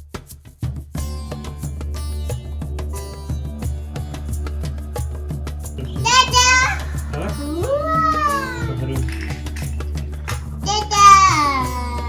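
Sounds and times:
background music: 0.2s - 12.0s
toddler squealing: 6.0s - 9.6s, 10.6s - 12.0s.

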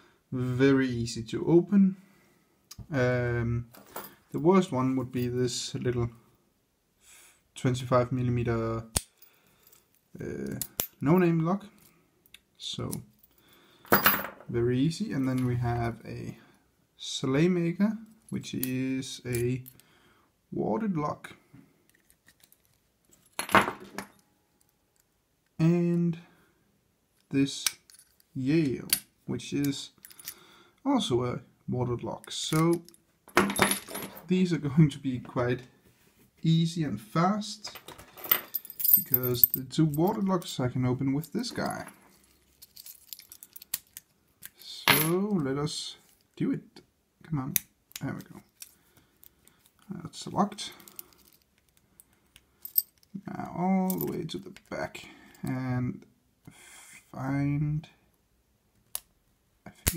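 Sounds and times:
keys and padlocks jingling: 41.6s - 44.1s, 50.7s - 53.1s.

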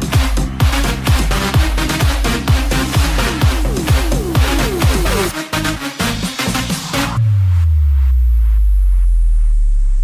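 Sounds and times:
four-on-the-floor kick drum: 0.0s - 5.3s.

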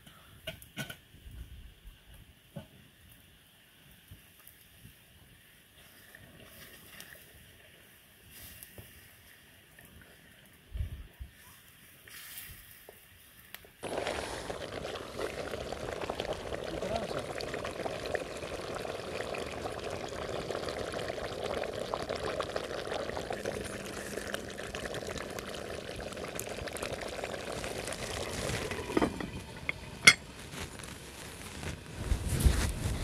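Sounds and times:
pot bubbling and sizzling: 12.1s - 33.0s
metal lid clink: 30.0s - 30.2s.

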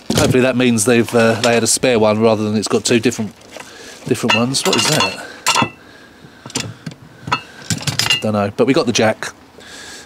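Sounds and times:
metal tools clinking: 3.5s - 5.8s, 6.5s - 8.4s.

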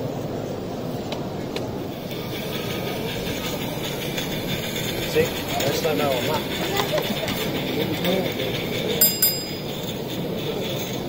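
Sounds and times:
hubbub of crowded hall: 0.0s - 11.0s
model locomotive running on track: 0.0s - 11.0s.

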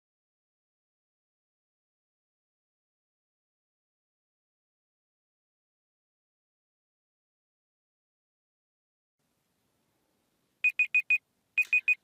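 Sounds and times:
high-pitched timer beeps: 10.6s - 12.0s.

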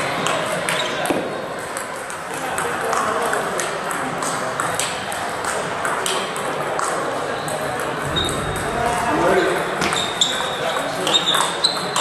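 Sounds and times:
murmur of voices: 0.0s - 12.0s
table tennis balls clicking: 0.2s - 12.0s.

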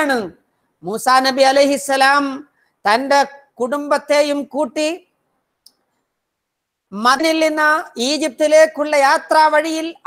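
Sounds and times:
person speaking: 0.0s - 5.8s, 6.9s - 10.0s.

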